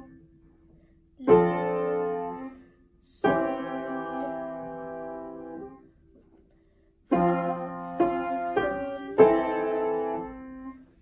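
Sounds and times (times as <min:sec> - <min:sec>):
upright piano chords: 0:00.0 - 0:06.3, 0:07.1 - 0:11.0.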